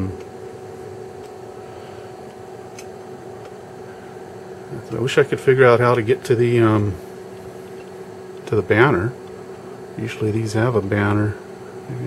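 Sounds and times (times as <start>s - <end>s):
cooling fans humming: 0.0s - 12.0s
faint steady whine: 0.0s - 12.0s.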